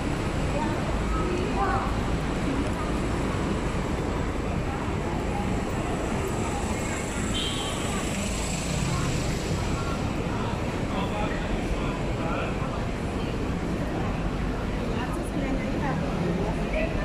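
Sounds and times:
faint chatter of passers-by: 0.0 - 17.0
road traffic rumble: 0.0 - 17.0.

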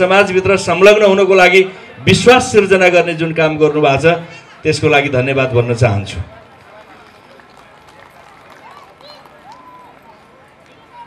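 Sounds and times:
man speaking into microphone: 0.0 - 6.4
faint outdoor background noise: 0.0 - 11.0.

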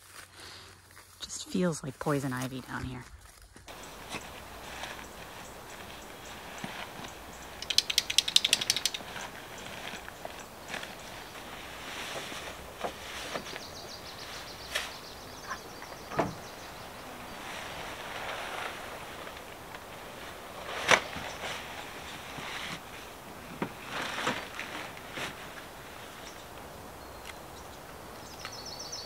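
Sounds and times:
fabric rustling: 3.7 - 7.6, 17.3 - 26.3
sharp clicks: 7.6 - 9.3.

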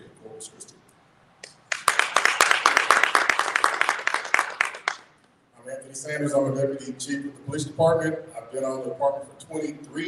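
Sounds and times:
audience applauding: 1.7 - 5.1.

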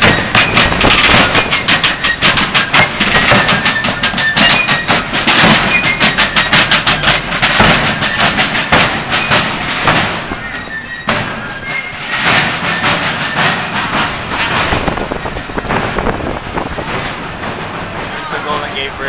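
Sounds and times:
shrill fife notes: 0.0 - 16.1
field drums: 0.0 - 19.0.

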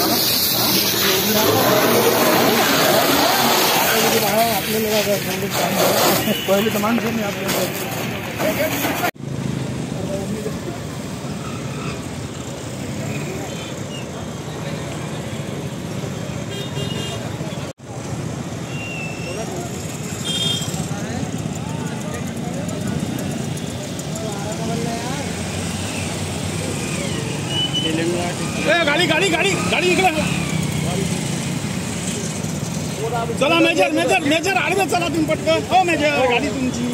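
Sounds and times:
scattered voices: 0.0 - 9.2
vehicle engines idling: 17.4 - 36.9.

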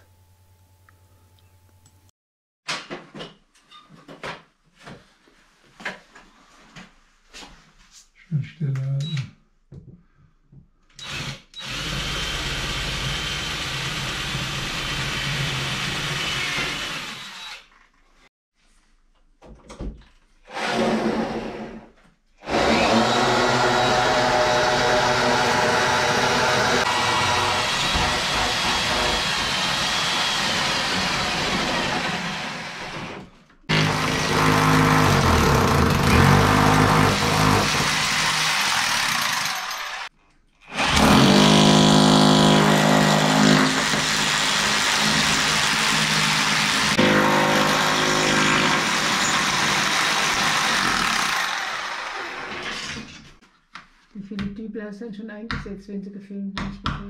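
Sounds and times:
electric drill running: 11.0 - 17.6.

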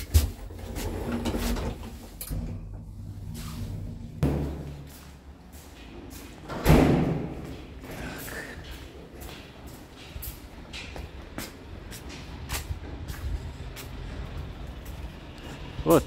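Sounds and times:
lift doors opening: 0.3 - 4.8
footsteps: 3.2 - 15.1
door bang: 4.2 - 4.8.

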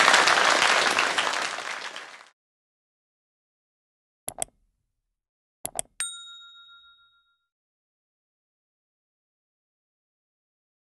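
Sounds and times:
bright bell chime: 6.0 - 7.5.

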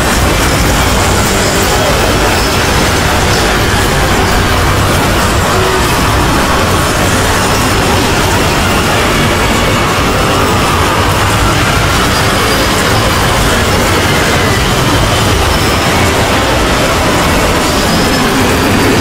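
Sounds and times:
overlapping cartoon soundtracks: 0.0 - 19.0.

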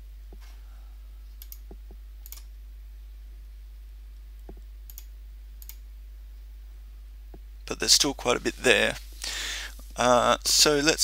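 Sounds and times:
low electrical hum: 0.0 - 11.0
computer mouse clicking: 1.4 - 2.5, 4.4 - 5.8.

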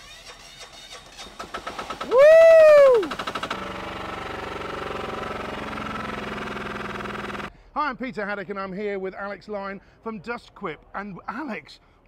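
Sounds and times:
diesel engine starting up: 0.2 - 7.5.

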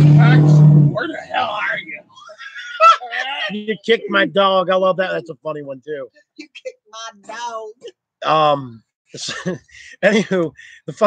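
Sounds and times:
soft voices: 0.0 - 11.0.

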